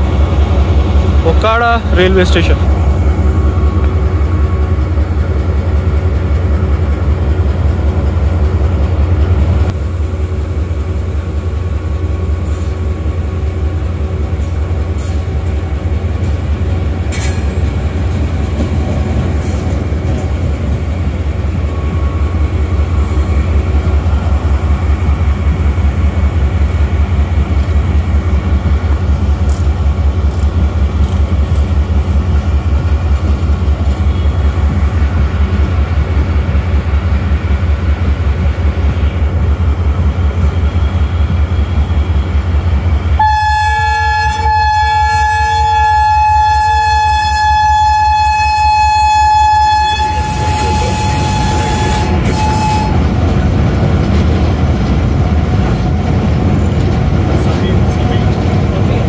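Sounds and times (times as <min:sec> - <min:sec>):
train coaches rumbling past: 0:00.0 - 0:59.0.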